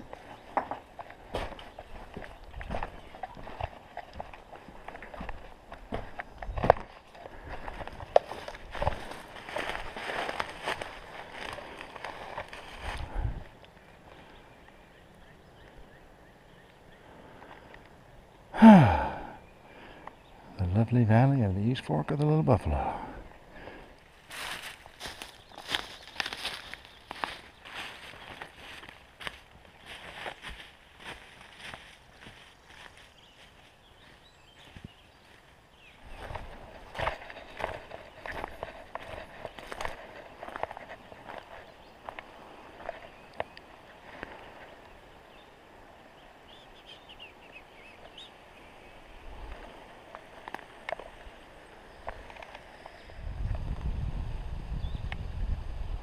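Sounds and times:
footsteps on dry leaves and twigs: 0.0 - 14.5, 22.6 - 45.5, 49.3 - 53.8.

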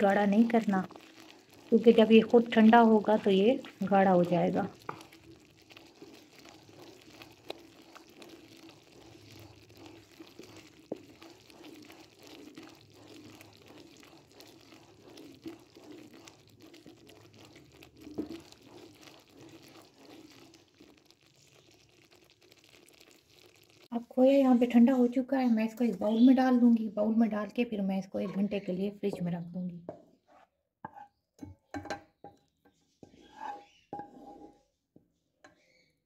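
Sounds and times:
wooden spatula scraping pan: 0.0 - 22.0, 28.2 - 31.2, 32.7 - 34.8
thick milk bubbling: 0.0 - 25.1.

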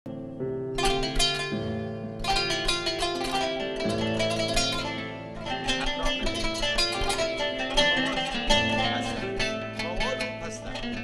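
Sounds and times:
plucked zither notes: 0.1 - 11.0.

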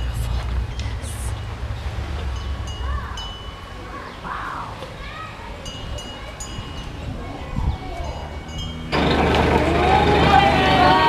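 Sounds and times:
small metal bells ringing: 2.4 - 4.1, 5.6 - 11.0.

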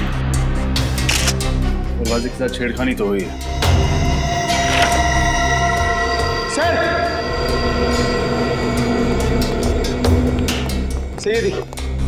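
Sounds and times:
synth drone score: 3.0 - 12.0.

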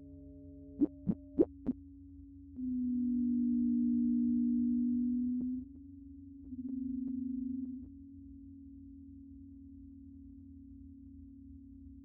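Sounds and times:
low synthesised sine tones: 0.0 - 8.1.

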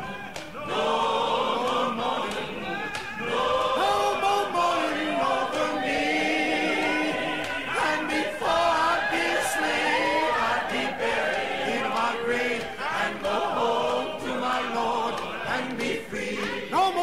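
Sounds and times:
choir singing unaccompanied: 0.0 - 17.0.

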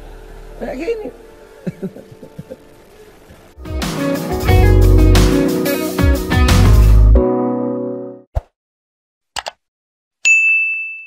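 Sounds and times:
mouse clicks: 9.4 - 9.6
bell-like notification ding: 10.3 - 11.0.

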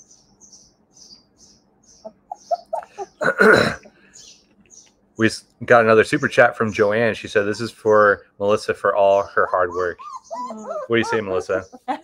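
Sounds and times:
harsh cough-like sound: 3.2 - 3.9.

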